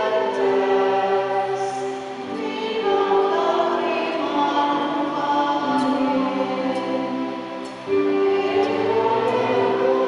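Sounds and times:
choir singing held notes: 0.0s - 10.0s.

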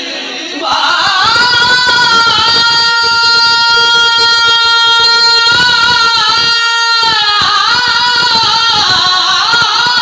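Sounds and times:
man singing into a microphone: 0.0s - 10.0s.

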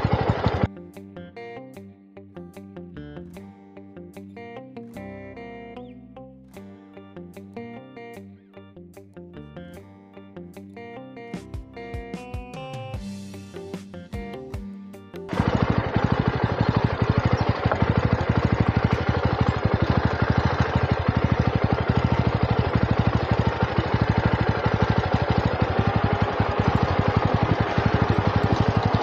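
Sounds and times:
motorcycle engine running: 0.0s - 0.7s, 15.3s - 29.0s.

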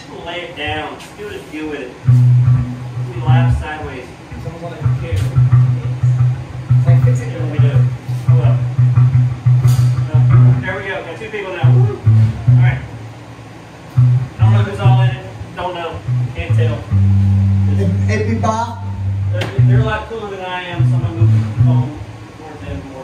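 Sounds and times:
electric guitar: 2.0s - 3.6s, 4.3s - 10.8s, 11.6s - 13.0s, 13.8s - 20.0s, 20.8s - 22.1s
electric bass riff: 2.0s - 10.8s, 11.6s - 20.2s, 20.8s - 22.4s
drum or cymbal hits: 2.1s - 3.7s, 7.9s - 10.7s.

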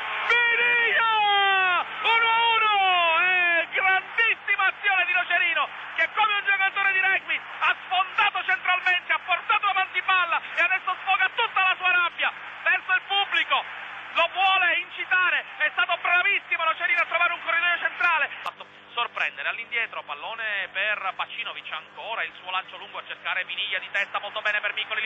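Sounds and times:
man giving football commentary: 0.0s - 25.0s.

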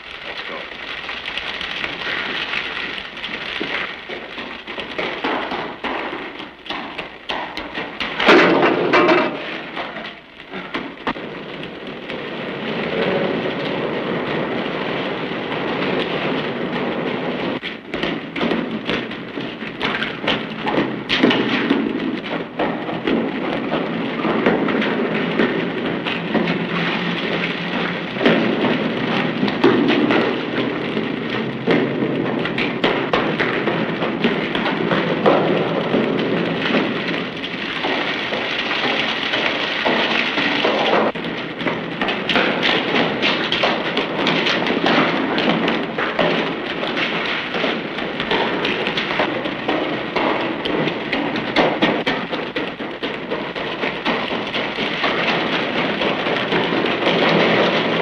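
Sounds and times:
water rushing in a concrete tunnel: 0.0s - 58.0s.

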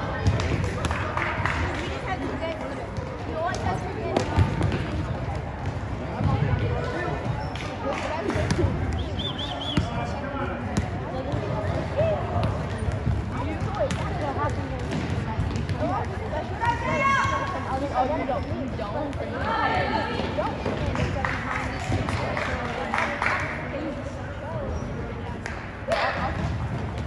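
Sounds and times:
people shouting in gym: 16.5s - 17.7s.

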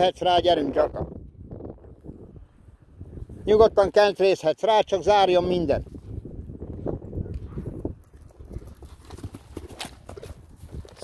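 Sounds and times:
horse hoofbeats on turf: 8.2s - 11.0s.

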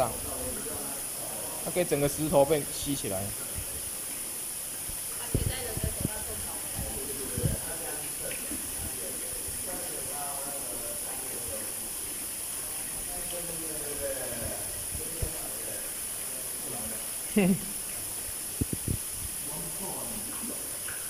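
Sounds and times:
water running into a tank: 0.0s - 21.0s
soft splashes in water: 3.3s - 21.0s.

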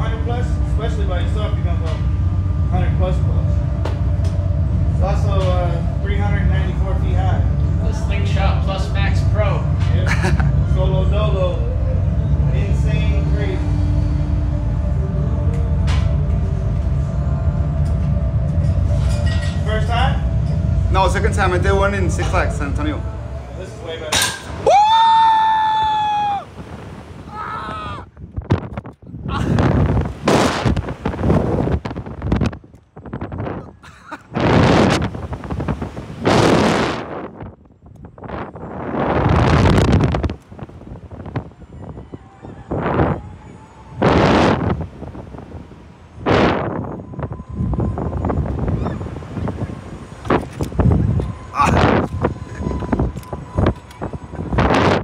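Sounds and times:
faint steady whine: 0.0s - 27.3s, 34.4s - 55.0s
wind gusts on microphone: 24.5s - 55.0s
person screaming: 27.3s - 28.1s.

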